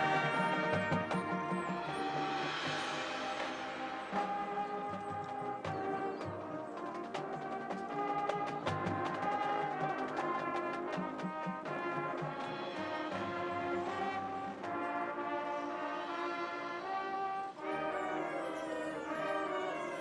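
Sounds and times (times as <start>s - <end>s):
brass chords: 0.0s - 20.0s
percussion strikes: 0.0s - 20.0s.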